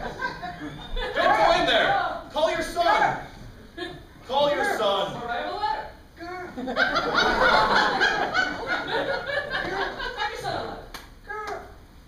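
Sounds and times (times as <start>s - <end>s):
audience laughing: 0.0s - 1.6s, 6.5s - 10.7s.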